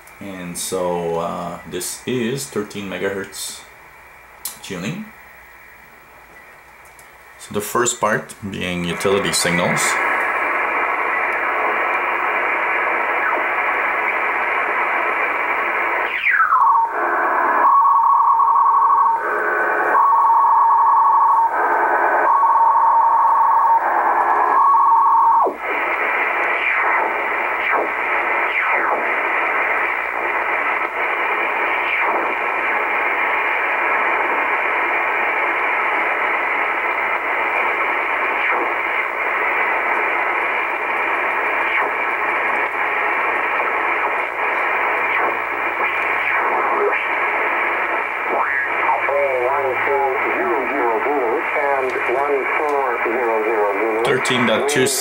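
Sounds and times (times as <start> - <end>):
radio static hiss: 0.0 - 55.0
switching radio tones: 0.0 - 55.0
radio tuning whistle: 7.5 - 55.0.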